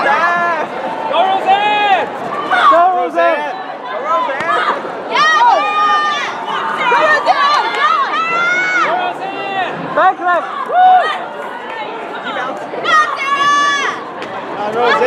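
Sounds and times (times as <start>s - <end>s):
people shouting: 0.0s - 11.5s, 12.3s - 14.1s
crowd noise: 0.0s - 15.0s.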